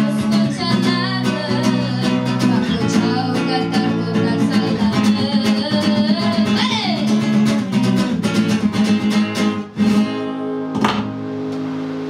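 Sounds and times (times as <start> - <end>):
acoustic guitar strumming chord: 0.0 - 12.0.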